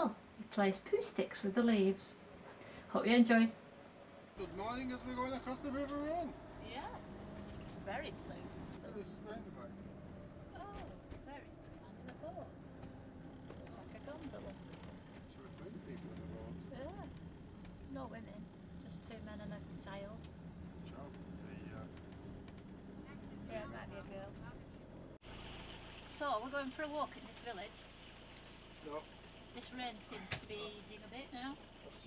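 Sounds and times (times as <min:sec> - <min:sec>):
engine and road noise drone: 0:00.0 - 0:32.0.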